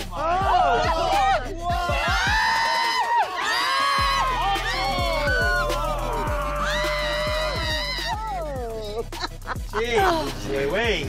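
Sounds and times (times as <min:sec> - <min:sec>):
background music: 0:00.0 - 0:11.0
people shrieking and squealing: 0:00.1 - 0:10.3.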